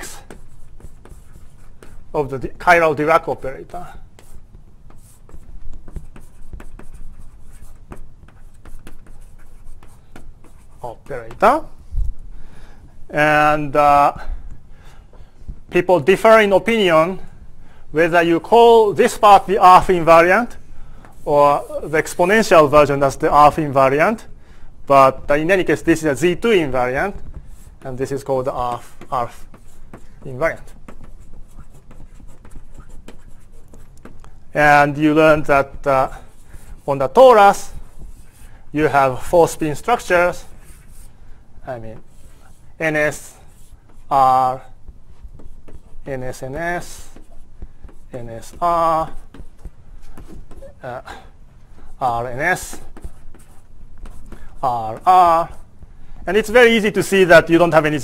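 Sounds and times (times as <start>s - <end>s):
writing on a board: 0.0s - 11.8s, 25.1s - 55.7s.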